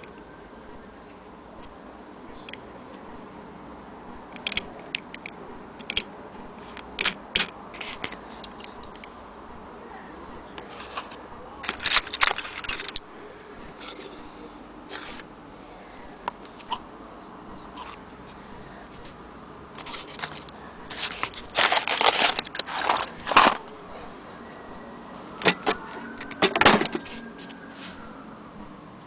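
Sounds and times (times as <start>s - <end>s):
faint handling noise: 10.4s - 15.3s, 17.2s - 24.2s
soft rustle: 10.6s - 12.9s, 27.0s - 28.2s
metal attachments clinking in box: 10.7s - 13.1s, 19.8s - 23.8s, 25.4s - 27.1s.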